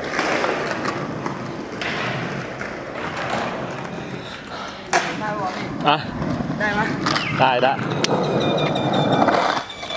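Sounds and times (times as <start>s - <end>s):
skateboard wheels rolling on concrete: 0.0s - 9.9s.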